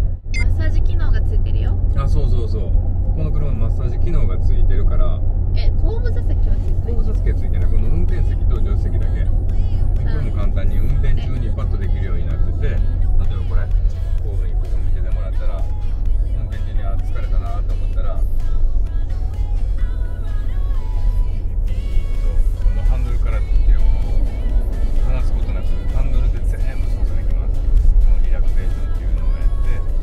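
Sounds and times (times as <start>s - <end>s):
car interior rumble: 0.0s - 30.0s
conversation: 0.0s - 30.0s
background music: 5.8s - 30.0s.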